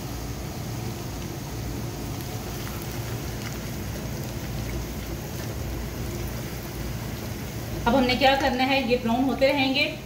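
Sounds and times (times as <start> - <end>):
garlic sizzling in hot oil: 0.0 - 9.7
faint crackles: 2.0 - 8.6.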